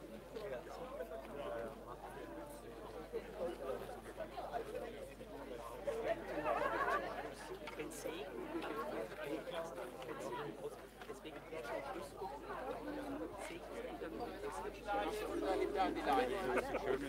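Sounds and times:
distant chatter of people: 0.0s - 17.0s.

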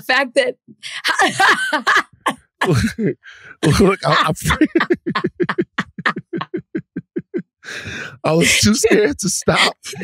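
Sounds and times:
woman laughing: 0.9s - 3.0s, 3.6s - 7.4s, 8.4s - 10.0s
wheezy gasping breath: 3.2s - 3.6s, 7.6s - 8.2s.

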